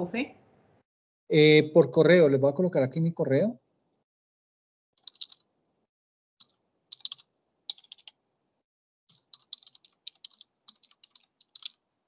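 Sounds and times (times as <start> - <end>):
computer keyboard typing: 5.0 - 5.4, 6.4 - 8.2, 9.1 - 11.8.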